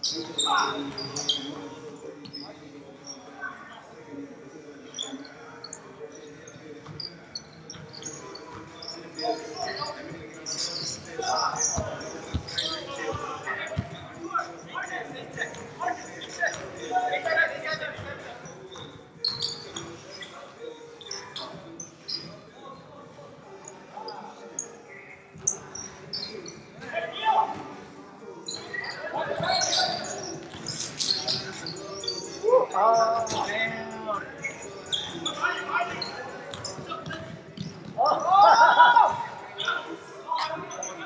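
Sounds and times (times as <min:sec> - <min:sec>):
sneaker squeaks: 0:00.0 - 0:04.1, 0:04.8 - 0:41.0
players' voices: 0:00.0 - 0:41.0.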